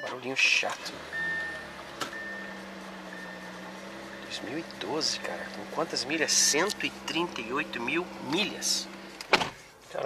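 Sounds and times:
car engine idling: 0.3 - 9.8
high electronic warning tone: 1.1 - 5.5.

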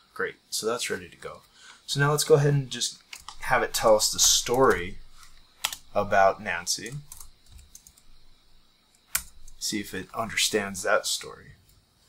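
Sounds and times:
computer keyboard typing: 3.1 - 8.1, 9.0 - 9.6.

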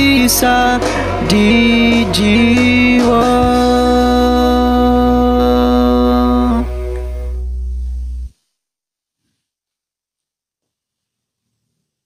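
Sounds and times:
sustained karaoke backing chord: 0.0 - 8.3.

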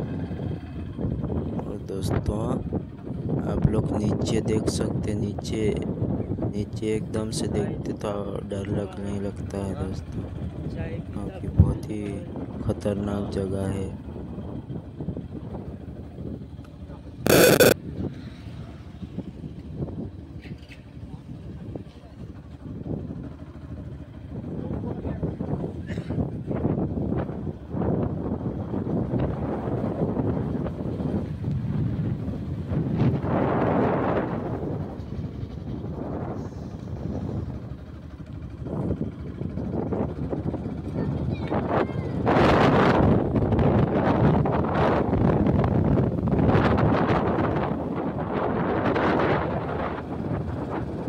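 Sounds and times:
wind rumble on microphone: 24.3 - 37.8, 38.5 - 51.0.

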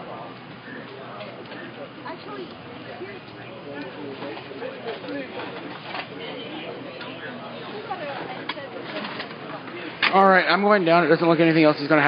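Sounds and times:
distant people talking: 0.0 - 12.0.

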